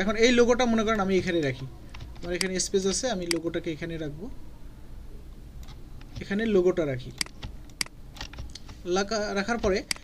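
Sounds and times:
computer keys clicking: 1.4s - 2.6s, 3.2s - 3.5s, 5.6s - 6.4s, 7.2s - 8.8s, 9.4s - 10.0s.

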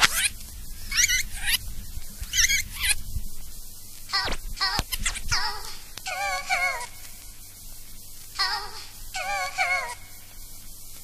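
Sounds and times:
warbling high vocal samples: 4.1s - 7.2s, 8.4s - 10.3s.

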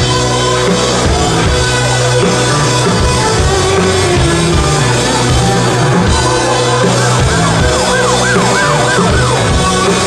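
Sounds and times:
rock band playing: 0.0s - 10.0s
siren-like wailing tone: 6.2s - 10.0s.

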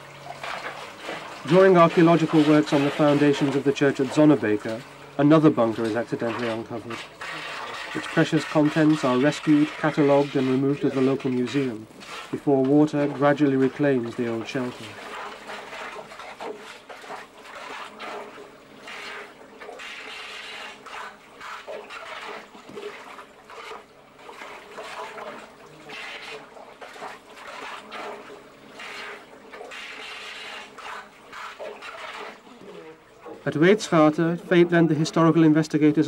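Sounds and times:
water trickling and splashing: 0.0s - 36.0s.

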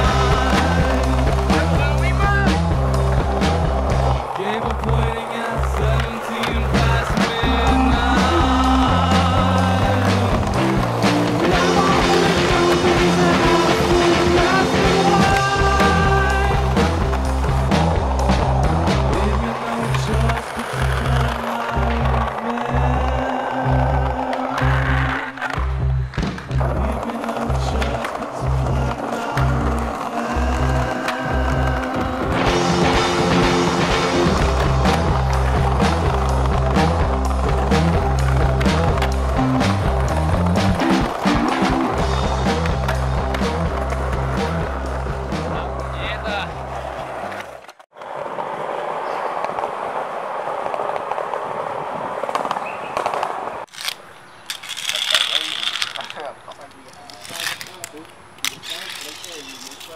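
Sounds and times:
rock music with bass and drums: 0.0s - 22.2s, 25.6s - 46.7s.

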